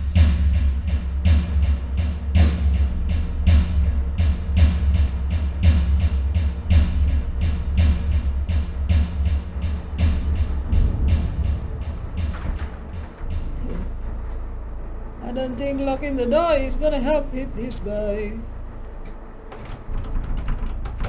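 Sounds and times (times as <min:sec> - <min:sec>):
rapid drum hits: 0:00.0 - 0:14.6, 0:19.5 - 0:21.0
deep low drone: 0:00.0 - 0:21.0
person speaking: 0:15.2 - 0:18.5.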